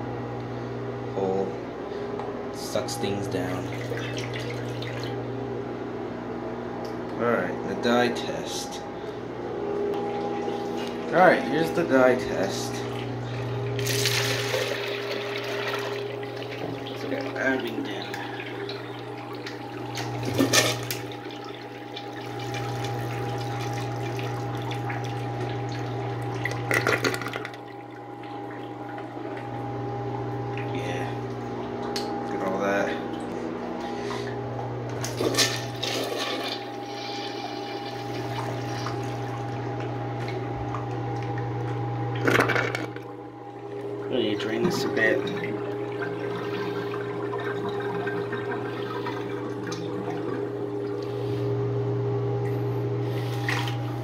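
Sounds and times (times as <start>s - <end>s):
small electric pump humming: 0.0s - 54.0s
water rushing through toilet bowl: 3.2s - 5.3s, 9.8s - 32.0s, 33.0s - 54.0s
water splashes: 3.6s - 5.2s, 12.8s - 29.5s, 35.0s - 42.8s.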